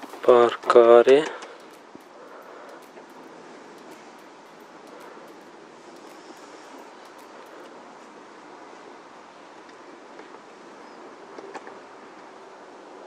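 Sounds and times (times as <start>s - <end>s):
faint clicks: 0.0s - 8.2s
low background hiss: 0.0s - 13.0s.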